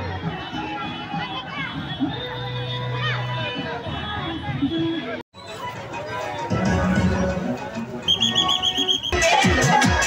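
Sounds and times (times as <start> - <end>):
dance music with heavy bass: 9.2 - 10.0.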